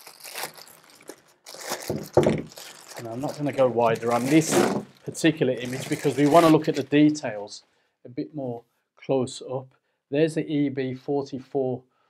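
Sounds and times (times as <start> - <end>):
plastic bag crinkling: 0.0 - 7.2.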